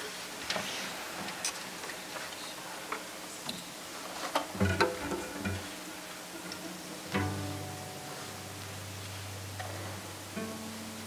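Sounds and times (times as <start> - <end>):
plucked string notes: 4.4 - 11.0.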